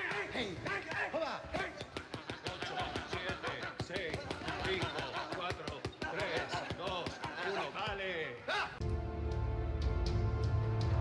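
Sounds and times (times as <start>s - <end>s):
punches slapping focus mitts: 0.0s - 7.7s
music: 8.8s - 11.0s.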